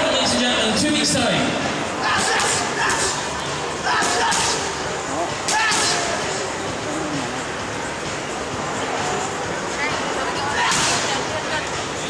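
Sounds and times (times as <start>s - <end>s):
boxing gloves striking pads: 2.1s - 3.2s, 3.9s - 4.8s, 5.4s - 6.2s, 10.6s - 11.1s.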